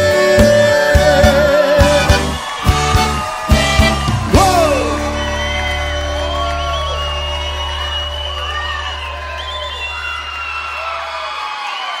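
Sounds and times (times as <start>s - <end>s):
crowd cheering and whooping: 0.9s - 12.0s.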